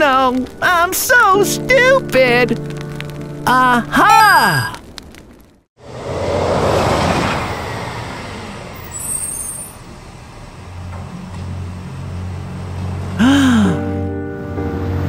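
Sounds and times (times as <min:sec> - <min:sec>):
low engine hum: 0:05.8 - 0:15.0
rushing vehicle noise: 0:05.8 - 0:15.0.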